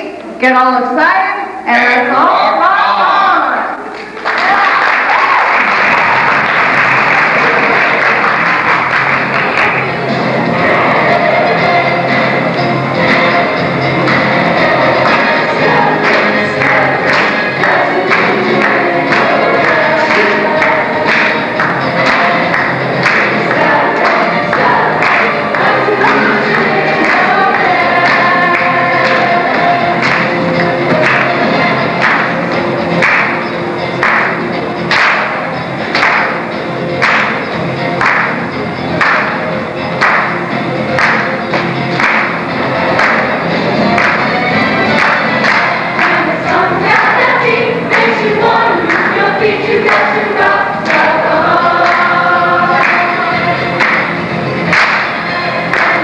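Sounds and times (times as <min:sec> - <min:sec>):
cast singing together: 0:06.2 - 0:33.2, 0:42.0 - 0:56.0
loud rock band music: 0:06.2 - 0:56.0.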